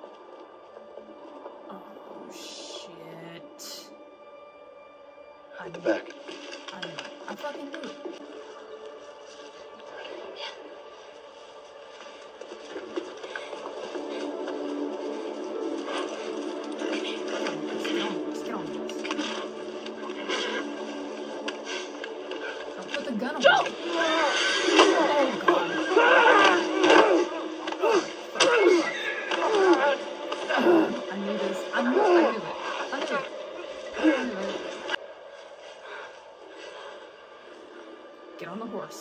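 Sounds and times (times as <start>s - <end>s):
musical score of sustained notes: 0.0s - 39.0s
voices from tv scene: 5.4s - 11.4s, 16.8s - 29.1s, 29.8s - 35.0s, 38.3s - 39.0s.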